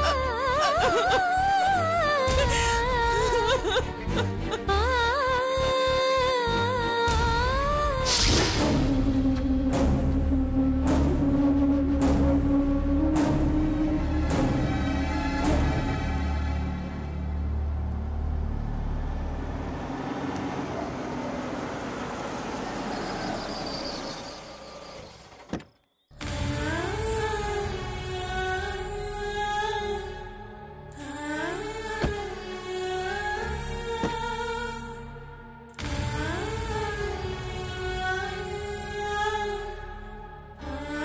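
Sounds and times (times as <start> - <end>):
low music bed: 0.0 - 20.7
car engine and tyre noise: 16.6 - 26.1.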